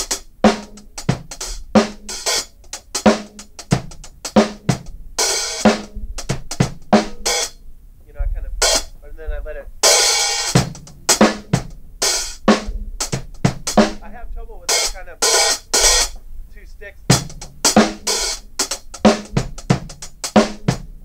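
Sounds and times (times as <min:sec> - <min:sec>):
open hi-hat closing: 0:00.0 - 0:07.6, 0:08.6 - 0:09.0, 0:09.8 - 0:14.1, 0:14.7 - 0:20.9
snare and bass drum hits: 0:00.0 - 0:07.6, 0:09.9 - 0:14.0, 0:17.1 - 0:20.9.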